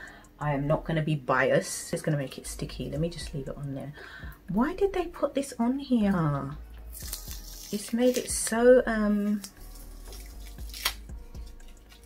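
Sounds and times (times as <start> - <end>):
plastic wrapper crinkling: 6.9 - 8.4, 9.3 - 12.0.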